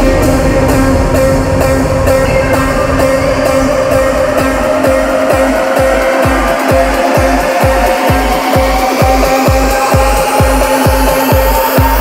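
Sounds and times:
held synth note: 0.0 - 12.0
kick drum beat: 0.0 - 12.0
rising synth sweep: 0.0 - 12.0.

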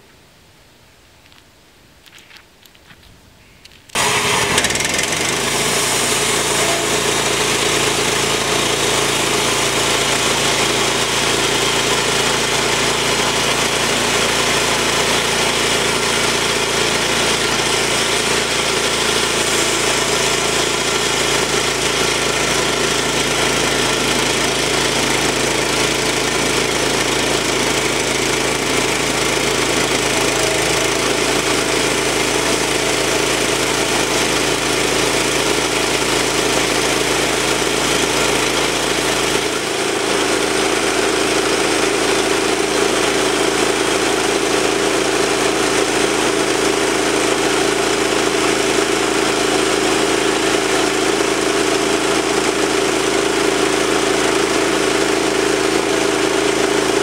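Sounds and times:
small engine running steadily: 3.9 - 57.0.

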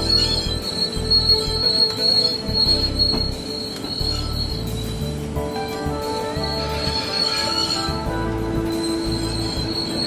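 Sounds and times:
background music: 0.0 - 10.0
train wheels squealing: 0.0 - 10.0.

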